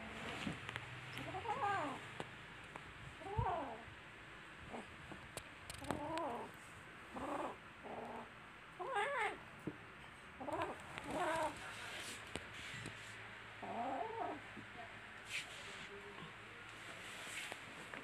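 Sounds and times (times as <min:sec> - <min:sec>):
kittens yowling: 0:01.2 - 0:02.0.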